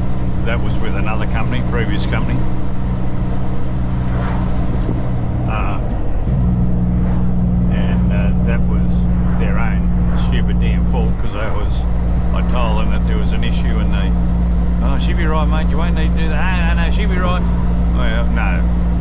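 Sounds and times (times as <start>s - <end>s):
truck diesel engine droning: 0.0s - 19.0s.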